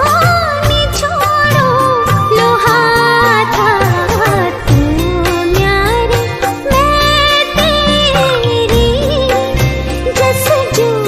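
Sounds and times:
steady drum beat: 0.0s - 10.6s
bass: 0.0s - 11.0s.

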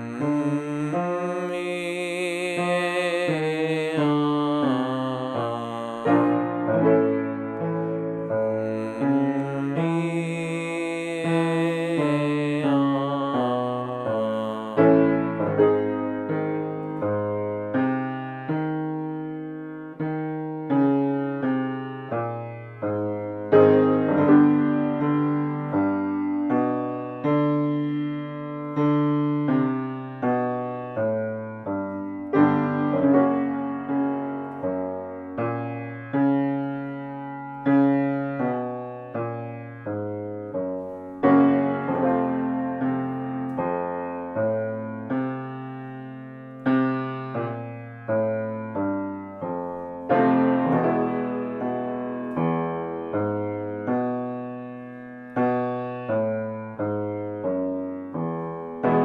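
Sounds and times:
grand piano chords: 0.0s - 59.0s.

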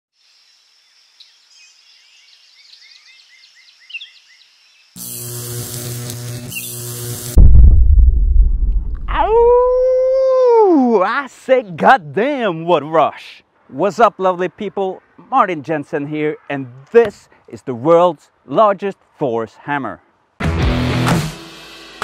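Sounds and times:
faint birdsong: 0.2s - 5.0s
electric crackling buzz: 5.0s - 9.2s
deep rumbling boom: 7.4s - 9.8s
man shouting: 9.1s - 11.3s.

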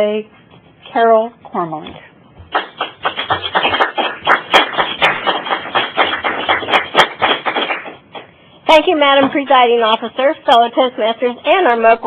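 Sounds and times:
people applauding: 2.5s - 8.0s
small audience clapping: 2.5s - 8.3s.

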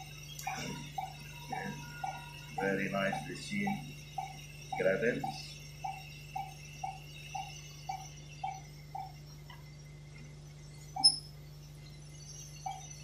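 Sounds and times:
low machine hum: 0.0s - 13.0s
patient monitor pulse beeps: 0.0s - 13.0s
sharp high beep: 11.0s - 11.4s.

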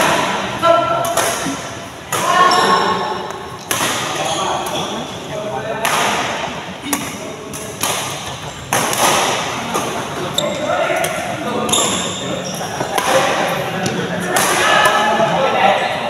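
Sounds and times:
rackets hitting shuttlecock: 1.0s - 4.8s, 5.8s - 10.3s.

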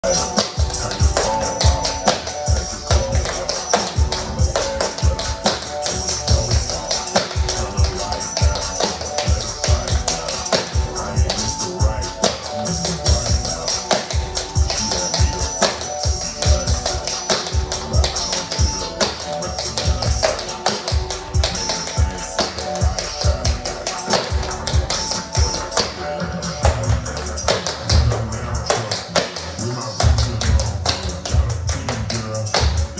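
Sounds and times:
hip-hop track with deep bass: 0.0s - 32.9s.

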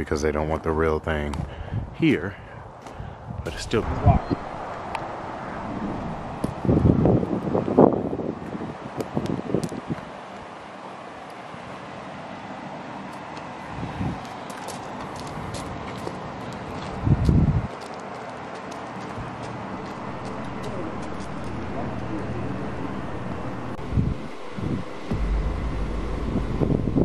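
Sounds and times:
steady outdoor hiss: 0.0s - 27.0s
wind buffeting microphone: 1.3s - 10.6s, 13.7s - 14.4s, 15.1s - 17.8s, 18.9s - 27.0s.

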